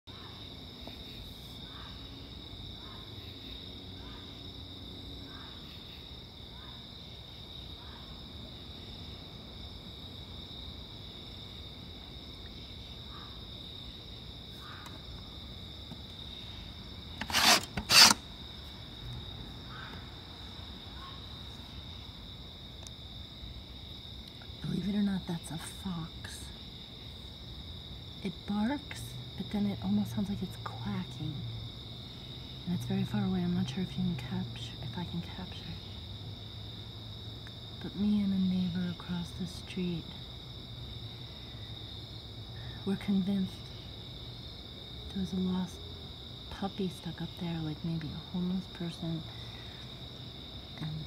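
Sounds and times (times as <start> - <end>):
high insect chorus: 0.1 - 51.0.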